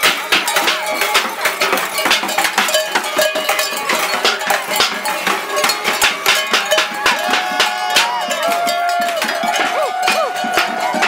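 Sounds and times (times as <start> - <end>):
metal bells clanging: 0.0 - 11.0.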